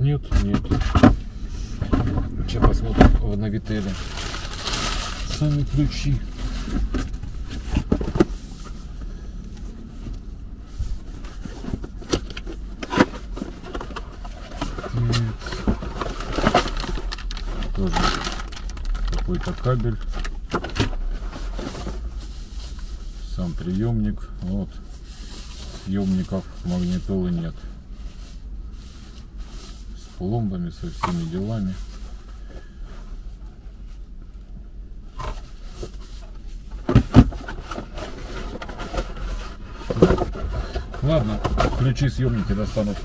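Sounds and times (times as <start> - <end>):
low steady hum: 0.0 - 43.0
cardboard rustling and scraping: 0.3 - 9.0, 9.7 - 29.9, 35.1 - 43.0
packaging rustling and crinkling: 3.6 - 8.3, 11.1 - 23.0.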